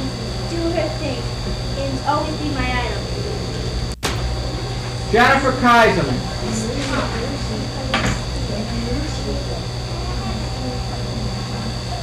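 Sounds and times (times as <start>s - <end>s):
faint high whine: 0.0s - 12.0s
tape hum and hiss: 0.0s - 12.0s.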